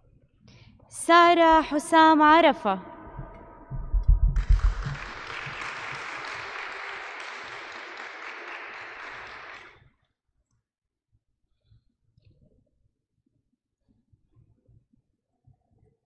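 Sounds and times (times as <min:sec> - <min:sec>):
applause: 0:04.4 - 0:09.8.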